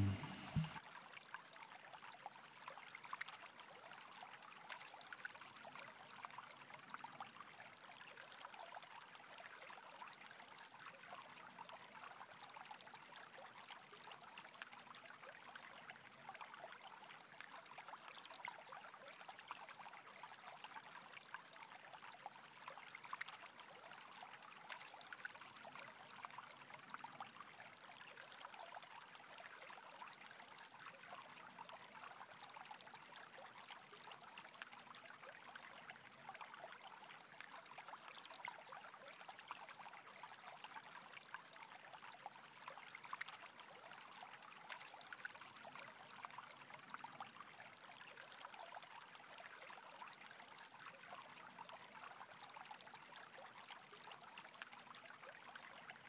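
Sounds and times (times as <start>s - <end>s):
faint steady trickle: 0.0s - 56.0s.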